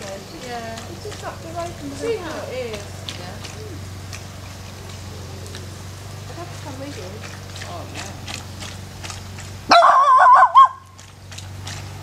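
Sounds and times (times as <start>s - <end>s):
warbling animal call: 9.7s - 10.9s.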